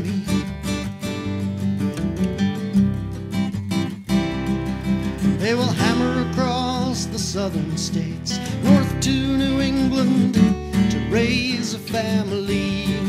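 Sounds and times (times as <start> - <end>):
person singing: 0.0 - 0.5, 5.3 - 13.0
acoustic guitar strumming: 0.0 - 13.0.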